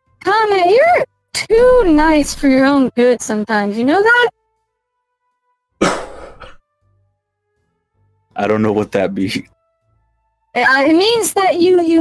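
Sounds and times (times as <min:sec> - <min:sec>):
breathy vocal burst: 0:05.8 - 0:06.6.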